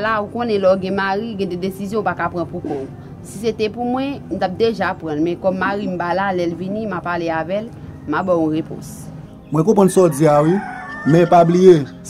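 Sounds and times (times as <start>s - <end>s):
man speaking: 9.5s - 11.9s.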